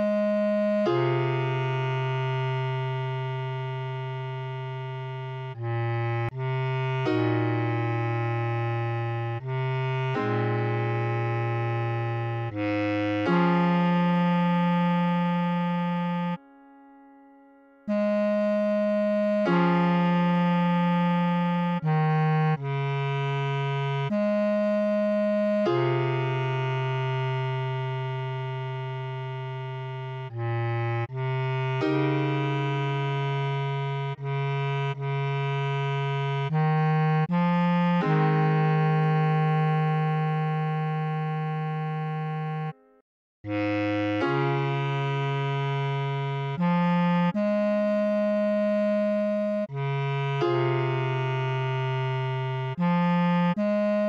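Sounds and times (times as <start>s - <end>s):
bass clarinet long note: 0.0s - 42.8s, 43.4s - 54.0s
held keyboard chord: 0.0s - 54.0s.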